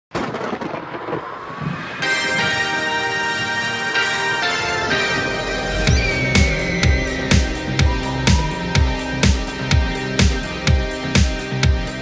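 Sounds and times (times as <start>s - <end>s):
thunder crack and rumble: 0.1s - 2.7s.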